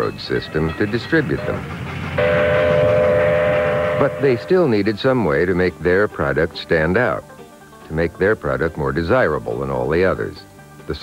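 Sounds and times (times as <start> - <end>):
steam locomotive whistle: 1.3 - 5.0.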